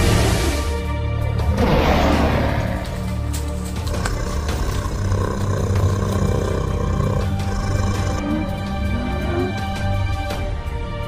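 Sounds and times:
dramatic orchestral film music: 0:00.0 - 0:11.0
dinosaur roar: 0:01.5 - 0:09.9.

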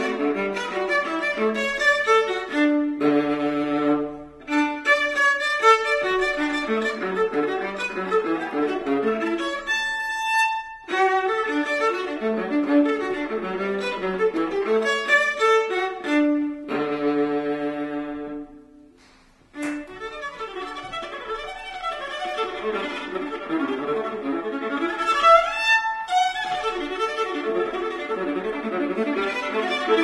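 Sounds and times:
bowed cello bass line: 0:00.0 - 0:18.7, 0:19.6 - 0:30.0
violin playing: 0:00.0 - 0:18.9, 0:19.5 - 0:30.0.

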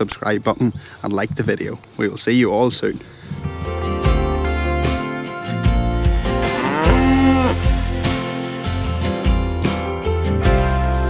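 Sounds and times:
background music: 0:03.1 - 0:11.0
cow mooing: 0:06.3 - 0:07.7.

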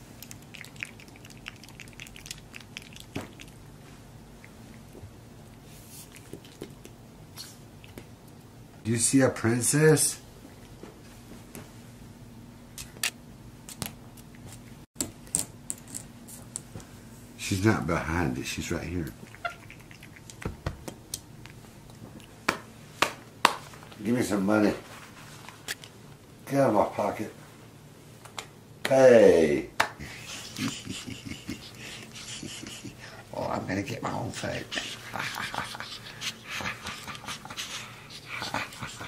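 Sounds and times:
monkey squeak: 0:19.4 - 0:19.7.

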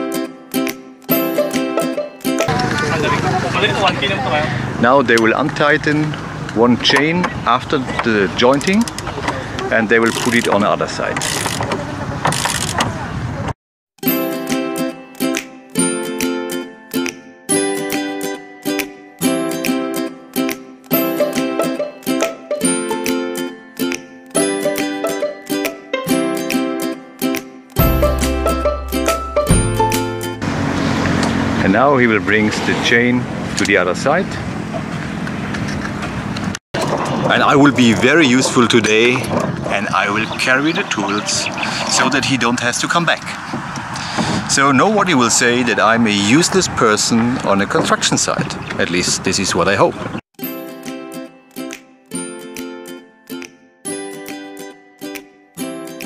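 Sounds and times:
engine humming: 0:02.3 - 0:13.5, 0:27.8 - 0:50.2
site background noise: 0:02.5 - 0:13.5.

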